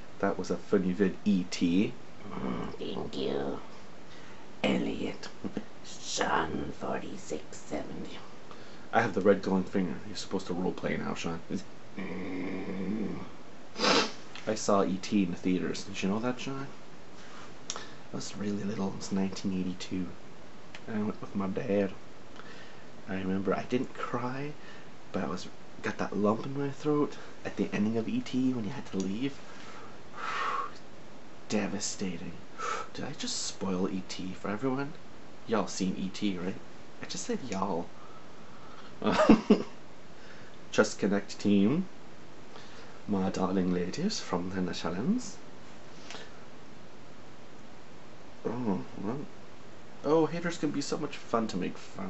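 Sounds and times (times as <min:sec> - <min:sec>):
man's low croaky voice: 0:02.2 - 0:02.8, 0:12.0 - 0:13.4
loud puff of breath: 0:13.8 - 0:14.2.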